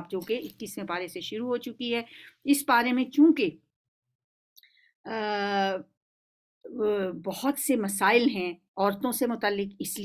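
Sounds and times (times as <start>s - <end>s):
woman speaking: 0.0s - 3.7s, 5.1s - 6.0s, 6.6s - 10.0s.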